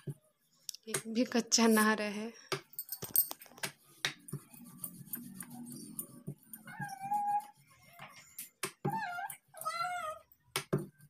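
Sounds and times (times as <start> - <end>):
high-pitched wavering calls: 5.5 - 7.6.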